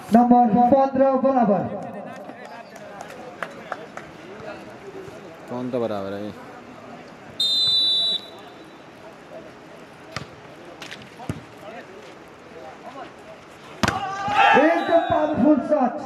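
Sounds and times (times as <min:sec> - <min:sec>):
referee's whistle blast: 0:07.4 - 0:08.8, 0:14.6 - 0:15.4
people shouting: 0:13.8 - 0:15.7.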